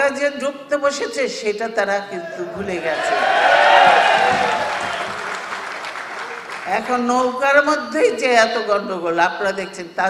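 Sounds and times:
audience applauding: 0:02.8 - 0:06.9.

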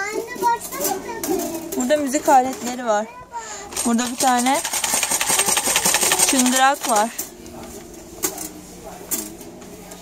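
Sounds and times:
toys clicking: 0:03.8 - 0:07.0.

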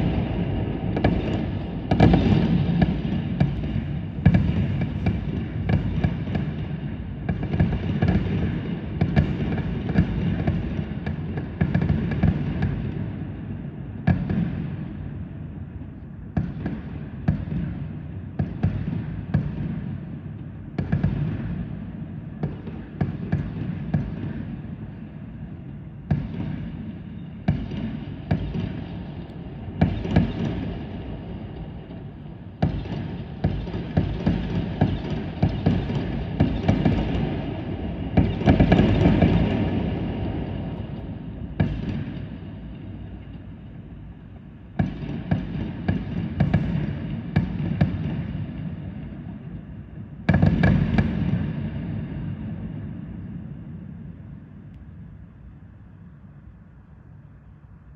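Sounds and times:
fireworks bangs: 0:00.0 - 0:06.7, 0:32.6 - 0:40.8.

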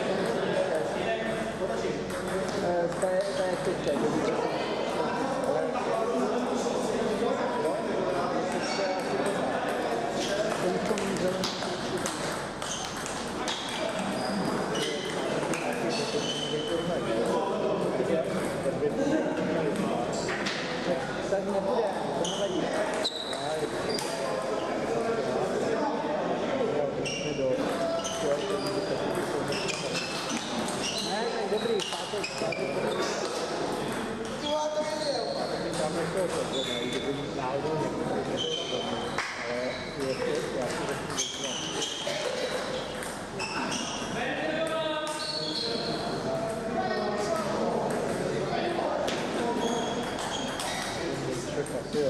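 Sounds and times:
murmur of voices: 0:00.0 - 0:52.0
table tennis balls clicking: 0:08.5 - 0:15.9, 0:40.1 - 0:43.4, 0:50.0 - 0:51.0.

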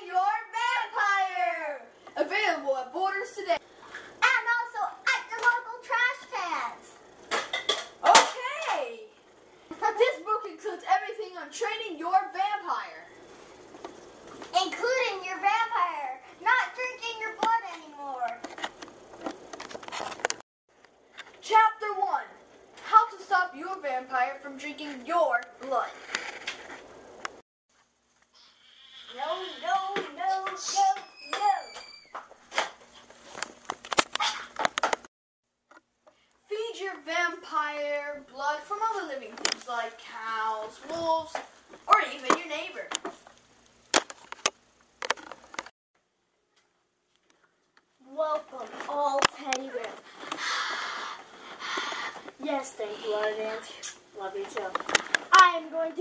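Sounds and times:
children speaking: 0:00.0 - 0:03.6, 0:04.2 - 0:07.0, 0:08.0 - 0:09.1, 0:14.6 - 0:18.4, 0:29.1 - 0:31.8, 0:52.4 - 0:56.0.

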